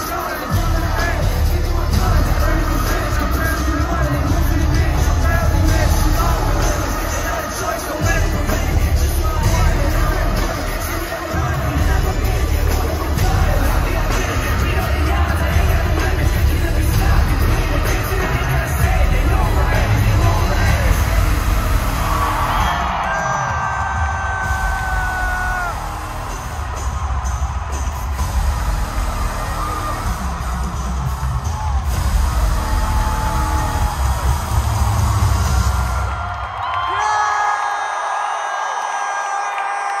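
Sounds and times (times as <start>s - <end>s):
crowd whooping and cheering: 0.0s - 40.0s
live concert music with heavy bass: 0.0s - 40.0s.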